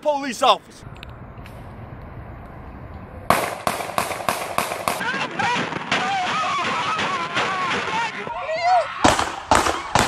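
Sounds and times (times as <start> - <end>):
rapid handgun shots: 3.3 - 8.1, 9.1 - 10.0.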